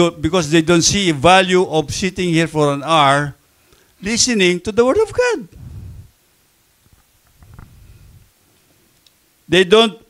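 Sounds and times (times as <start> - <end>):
low rumble on microphone: 5.5 - 6.2, 6.9 - 8.4.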